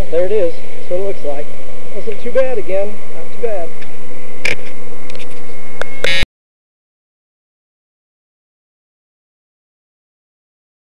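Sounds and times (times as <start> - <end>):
camera handling noise: 3.8 - 6.2.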